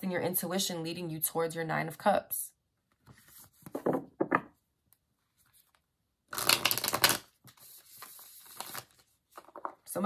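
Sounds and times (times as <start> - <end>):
cards rustling: 5.4 - 9.8
cards flicking in shuffle: 6.3 - 9.7.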